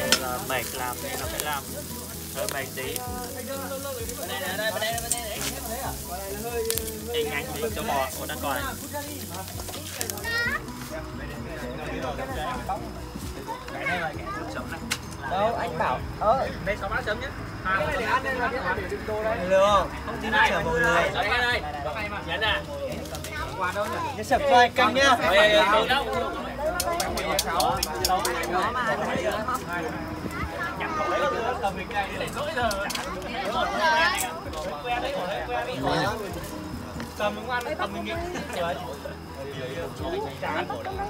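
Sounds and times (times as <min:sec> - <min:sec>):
group of people chattering: 0:00.0 - 0:41.0
people talking over one another: 0:00.0 - 0:41.0.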